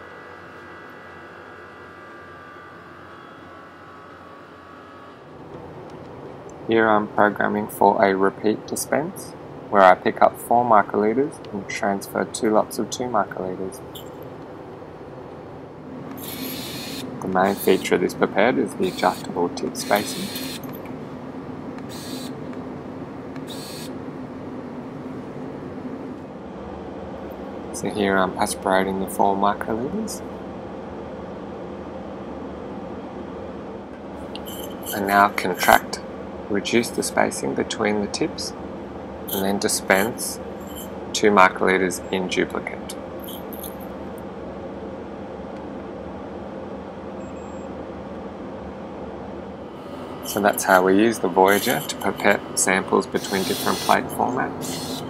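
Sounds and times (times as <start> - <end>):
electronic pipette motor whirring: 0.0 - 5.7, 16.0 - 20.9, 21.8 - 22.5, 23.3 - 24.0, 34.3 - 35.8, 39.3 - 41.0, 43.2 - 43.9, 49.8 - 55.0
ventilation hum: 0.0 - 55.0.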